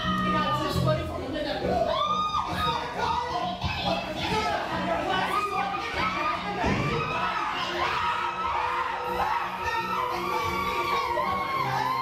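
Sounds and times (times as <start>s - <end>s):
actors shouting over one another: 1.8s - 12.0s.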